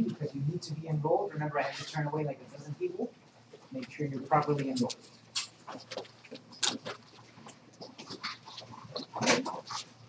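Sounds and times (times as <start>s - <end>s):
rustling and clicking handling noises: 3.3s - 10.0s.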